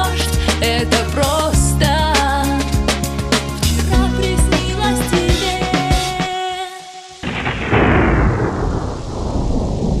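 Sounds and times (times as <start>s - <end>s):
thunder rumbling: 7.2s - 10.0s.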